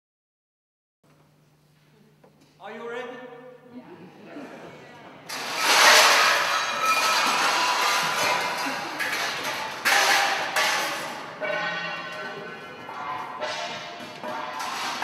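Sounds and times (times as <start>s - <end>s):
metal percussion struck and ringing: 5.3s - 15.0s.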